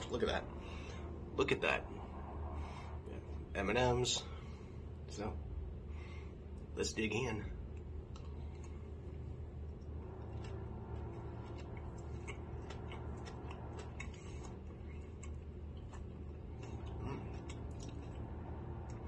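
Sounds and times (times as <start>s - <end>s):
steady low hum: 0.0s - 19.0s
person chewing: 7.7s - 19.0s.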